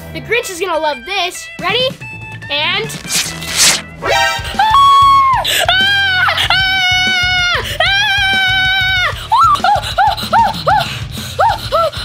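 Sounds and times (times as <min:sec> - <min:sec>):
tape ripping off skin: 0:02.8 - 0:03.9.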